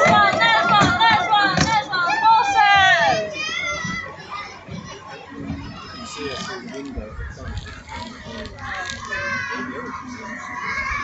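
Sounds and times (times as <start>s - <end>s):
children calling out: 0.0s - 11.0s
children chattering: 0.0s - 11.0s.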